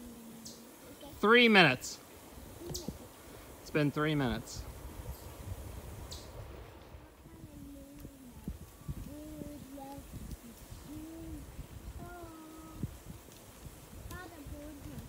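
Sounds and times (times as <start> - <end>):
wind noise on microphone: 2.4 - 3.6, 4.2 - 15.0.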